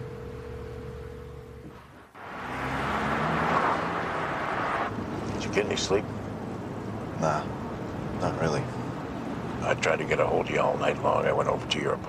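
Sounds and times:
low hum with held tone: 0.0 - 2.0
city street traffic: 0.0 - 12.0
car engine: 1.3 - 12.0.

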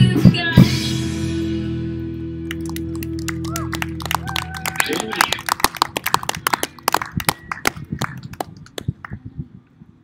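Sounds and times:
audience applause: 2.5 - 8.9.

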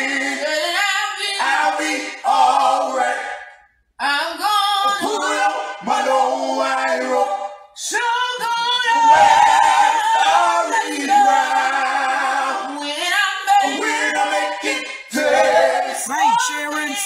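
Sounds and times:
voices singing in harmony: 0.0 - 17.0.

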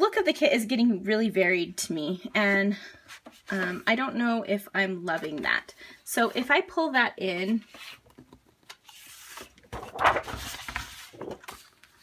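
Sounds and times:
paper sheets rustling and sliding: 8.8 - 12.0.

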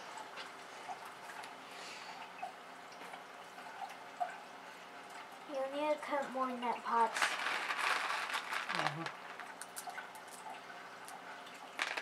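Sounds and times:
water dripping: 0.0 - 12.0
clay pebbles clicking: 7.0 - 10.4, 11.8 - 12.0.

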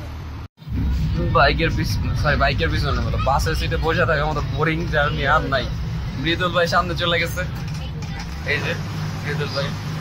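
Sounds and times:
bus engine drone: 0.0 - 10.0
road noise: 0.0 - 10.0
people talking: 0.7 - 9.8.

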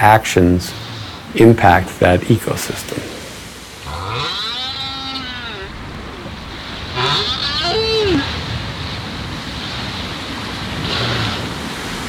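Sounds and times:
sea noise: 0.0 - 12.0
whale calls underwater: 3.9 - 8.5.

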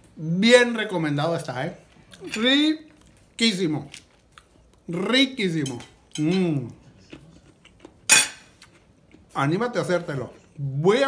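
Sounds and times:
soft chewing clicks: 6.9 - 9.4
fork clinking on plate: 8.1 - 8.5.

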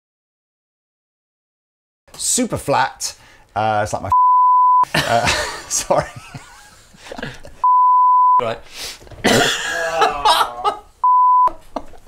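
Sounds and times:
censor bleep: 4.1 - 4.8, 7.6 - 8.4, 11.0 - 11.5
laughter: 4.9 - 7.7, 9.3 - 10.9, 11.5 - 12.0.

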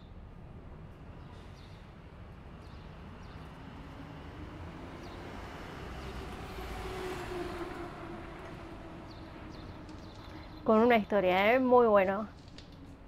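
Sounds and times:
low rumbling ambient music: 0.0 - 11.6, 12.3 - 13.0.

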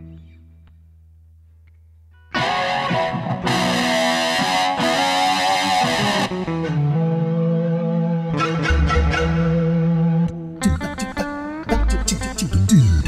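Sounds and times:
guitar synthesizer notes: 0.0 - 0.7, 2.1 - 13.0.

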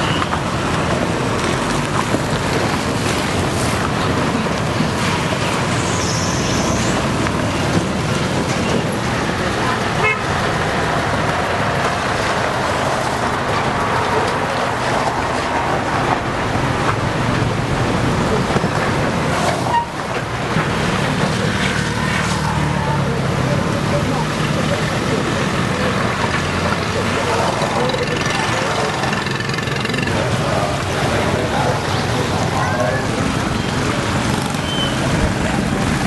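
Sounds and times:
motorbikes and cars passing: 0.0 - 36.0
car horns honking: 9.9 - 10.4.

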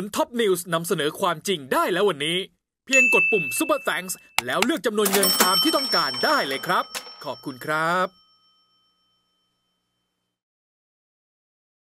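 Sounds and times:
man speaking: 4.4 - 5.3
bell-like chime: 5.1 - 10.3.

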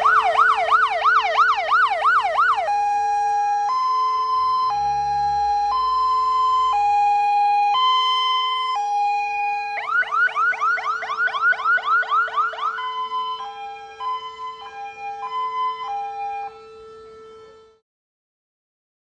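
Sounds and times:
steady lower tone: 0.0 - 8.8
fire engine siren: 0.0 - 17.8.

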